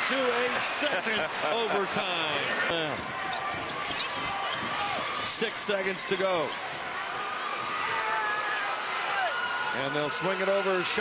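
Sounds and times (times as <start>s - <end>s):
crowd noise: 0.0s - 11.0s
basketball bouncing on court: 3.0s - 5.2s.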